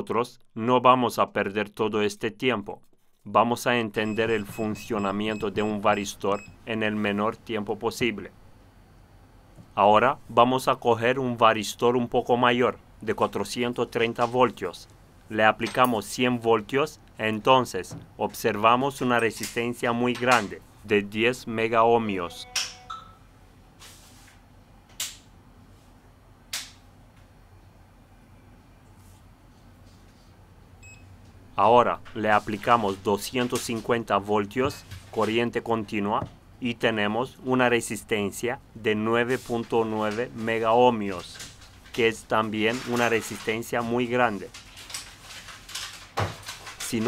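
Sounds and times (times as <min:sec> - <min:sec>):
man speaking: 0:00.0 - 0:08.4, 0:09.8 - 0:22.6, 0:31.6 - 0:41.4, 0:42.0 - 0:44.5.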